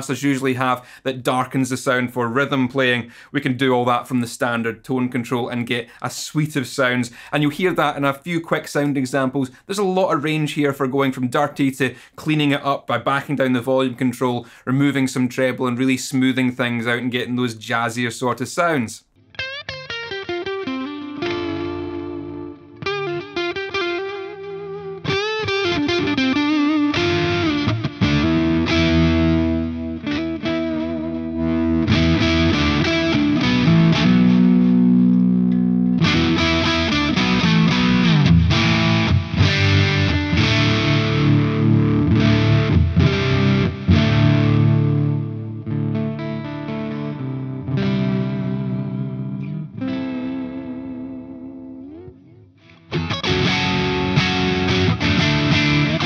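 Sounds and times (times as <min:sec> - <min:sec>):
electric guitar through amp: 0:19.2 - 0:56.0.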